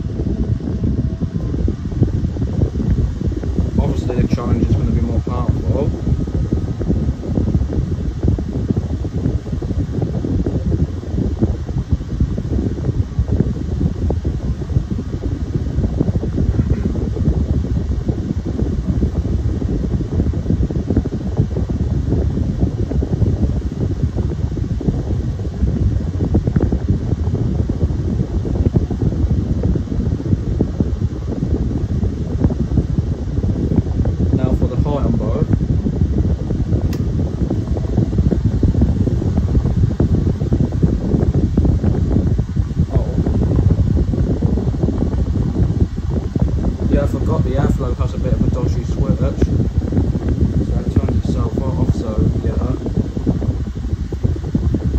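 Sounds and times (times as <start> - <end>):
electric fans running: 0.0 - 54.9
wind buffeting microphone: 0.0 - 54.9.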